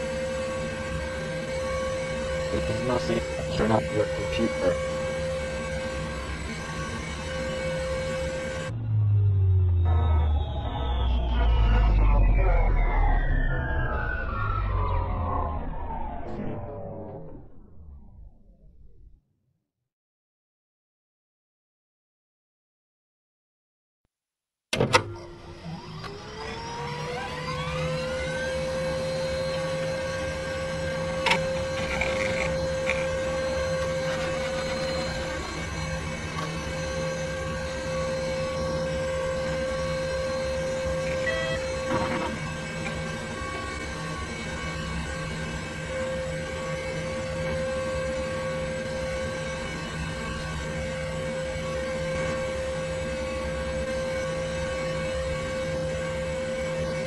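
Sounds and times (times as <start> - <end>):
computer fans whining: 0.0 - 18.6, 24.8 - 57.0
low hum: 0.0 - 19.2.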